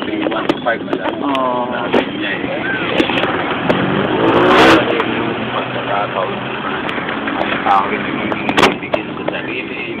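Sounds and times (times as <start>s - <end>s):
vehicle engine and road noise: 0.0s - 10.0s
engine revving: 2.0s - 8.8s.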